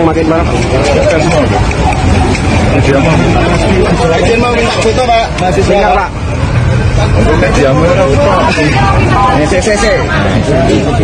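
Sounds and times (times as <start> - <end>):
crowd chatter: 0.0 - 11.0
men talking: 0.0 - 11.0.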